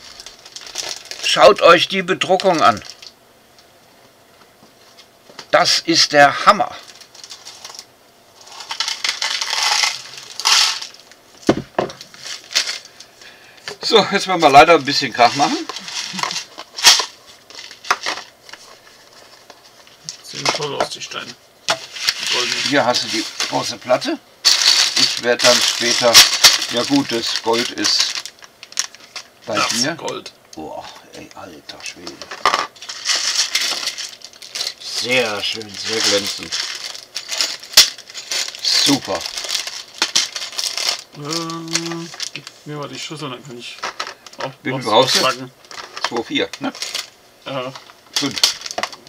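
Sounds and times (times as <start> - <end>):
plastic bags crinkling: 0.0 - 3.2, 6.7 - 13.3, 13.9 - 20.8, 21.7 - 30.2, 31.8 - 49.0.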